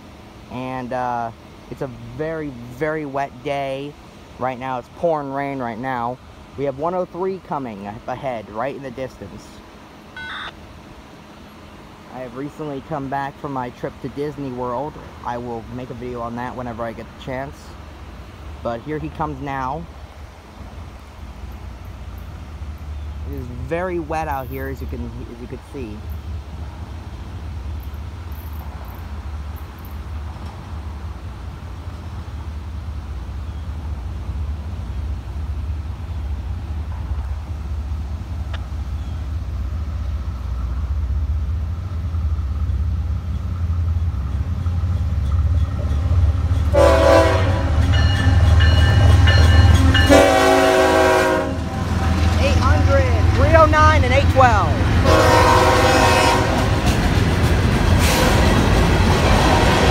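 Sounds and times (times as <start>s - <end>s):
freight train rumble: 0.0s - 59.9s
locomotive horn blasts: 46.7s - 48.0s, 49.9s - 52.2s, 55.0s - 56.7s.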